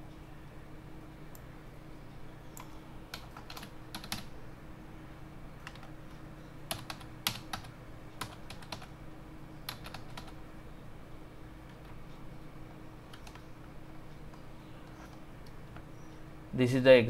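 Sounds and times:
steady low hum: 0.0 - 17.0
keyboard keys tapping: 2.5 - 4.3, 5.6 - 6.0, 6.7 - 8.9, 9.7 - 10.4, 13.1 - 16.2.

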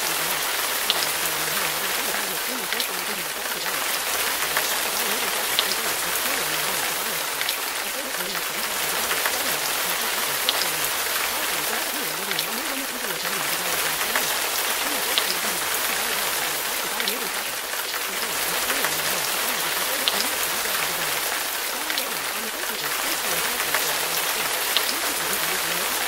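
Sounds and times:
faint voice: 0.0 - 26.0
steady rain: 0.0 - 26.0.

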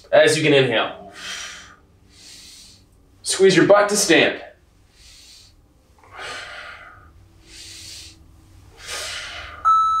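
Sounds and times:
heavy exercise breathing: 0.9 - 3.2, 4.6 - 9.7
timer high beep: 9.6 - 10.0.

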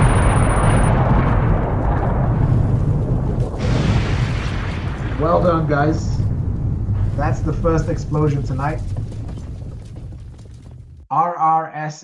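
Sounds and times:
low noisy rumble: 0.0 - 11.1.

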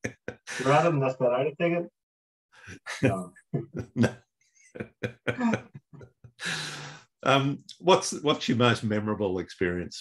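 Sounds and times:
man laughing: 0.0 - 1.0, 2.7 - 4.2, 4.8 - 6.9.

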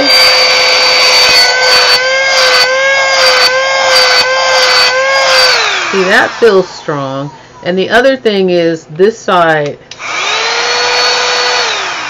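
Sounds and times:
handheld vacuum cleaner whine: 0.0 - 7.3, 9.9 - 12.0.

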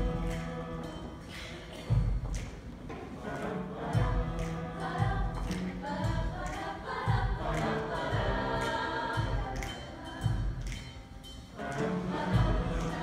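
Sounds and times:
choir singing in harmony: 0.0 - 2.0, 3.1 - 13.0
instrumental accompaniment with beat: 0.0 - 13.0.

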